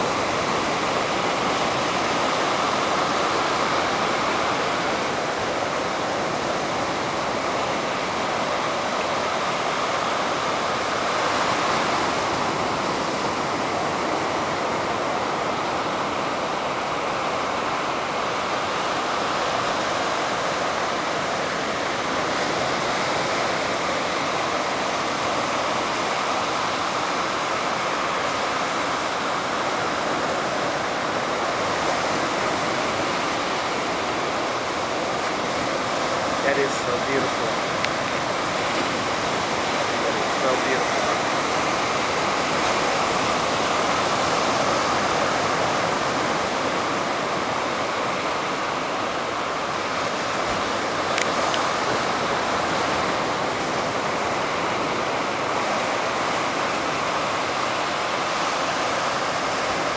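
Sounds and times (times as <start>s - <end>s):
surf breaking on beach: 0.0s - 59.9s.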